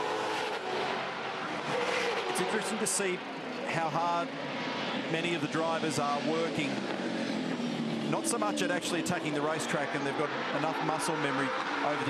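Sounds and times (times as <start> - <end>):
race car engine and tyre noise: 0.0 - 12.0.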